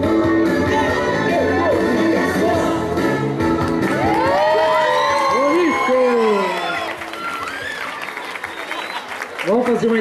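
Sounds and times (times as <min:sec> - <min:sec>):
rock and roll dance music: 0:00.0 - 0:06.4
audience cheering and whooping: 0:03.9 - 0:09.4.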